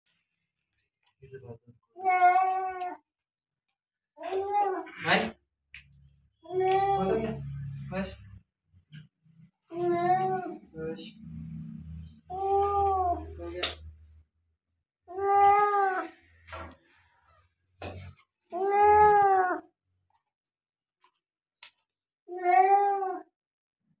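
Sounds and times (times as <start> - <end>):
cat meowing: 2.0 - 3.0, 4.2 - 5.0, 9.7 - 10.7, 12.3 - 13.5, 15.1 - 16.2, 18.5 - 19.6, 22.3 - 23.3.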